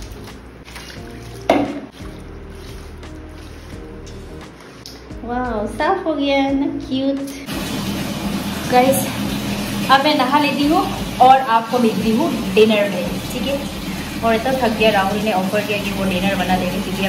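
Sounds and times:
water running from a tap: 0.0s - 4.4s, 7.3s - 17.0s
woman talking: 5.2s - 7.5s, 8.7s - 9.2s, 9.9s - 17.0s.

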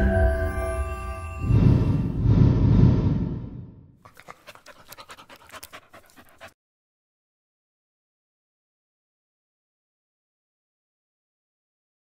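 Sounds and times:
music: 0.0s - 2.1s
dog panting: 4.0s - 6.6s.

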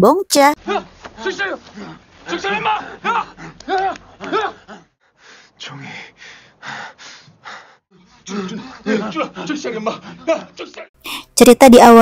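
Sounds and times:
speech: 8.9s - 12.0s.

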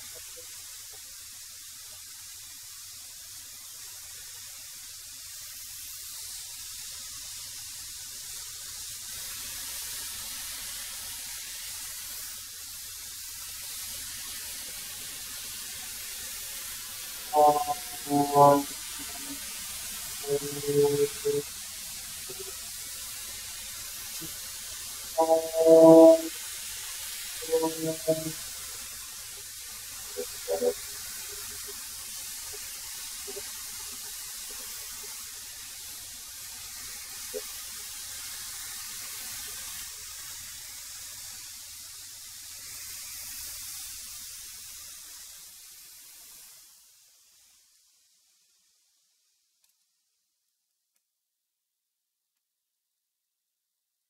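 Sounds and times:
short bursts of musical notes: 17.4s - 19.4s, 20.2s - 21.4s, 25.2s - 26.3s, 27.4s - 28.4s.

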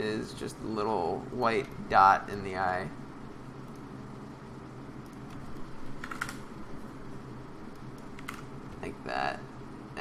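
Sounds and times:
steady low hum: 0.0s - 10.0s
computer keyboard clicks: 6.0s - 6.4s, 7.8s - 8.4s.

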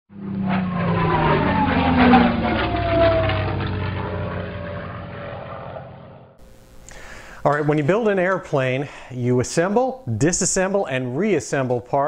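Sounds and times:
propeller aircraft engine passing: 0.1s - 6.4s.

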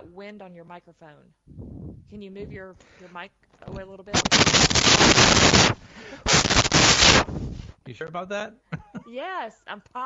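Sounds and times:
wind blasts hitting microphone: 1.5s - 2.6s, 6.4s - 7.7s.

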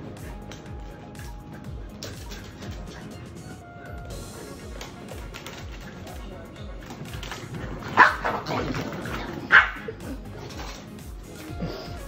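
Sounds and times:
dog barking: 7.7s - 10.0s.

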